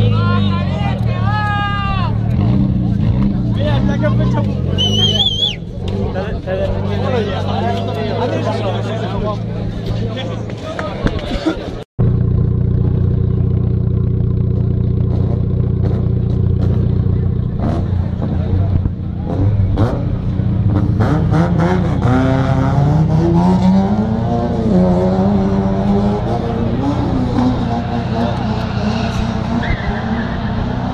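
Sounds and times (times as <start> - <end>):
car engine idling and revving: 0.0 - 10.8, 12.0 - 30.9.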